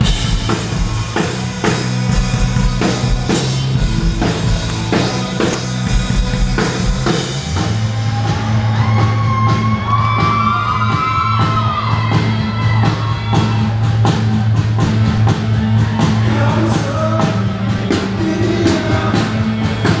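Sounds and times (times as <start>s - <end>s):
drum kit hits: 0.0s - 7.9s
live rock band playing: 0.0s - 20.0s
steady bass line: 0.0s - 20.0s.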